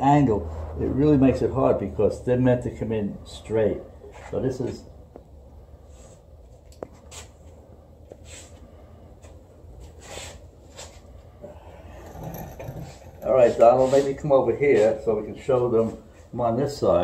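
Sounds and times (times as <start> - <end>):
low steady hum: 0.0 - 15.5.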